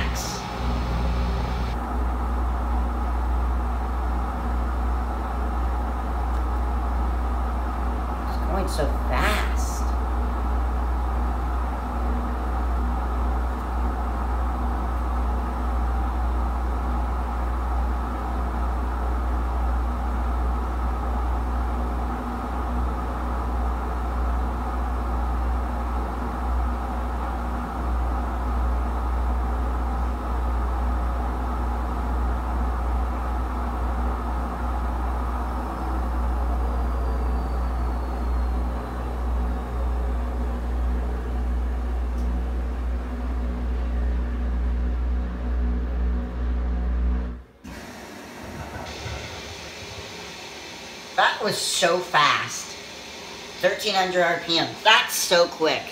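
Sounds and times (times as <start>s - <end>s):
washing machine spinning: 0.0s - 55.9s.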